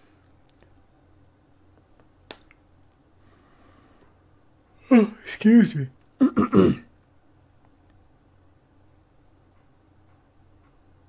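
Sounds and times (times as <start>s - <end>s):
man clearing his throat: 6.2s - 6.9s.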